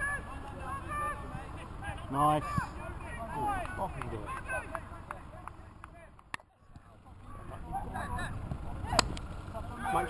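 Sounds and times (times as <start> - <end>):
distant shouted voices: 0.0 - 10.0.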